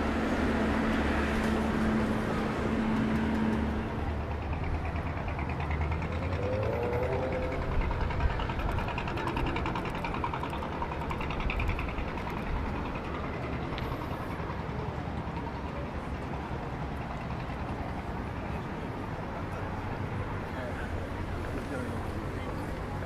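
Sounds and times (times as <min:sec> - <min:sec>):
low hum of traffic and boats: 0:00.0 - 0:23.0
street noise: 0:00.0 - 0:23.0.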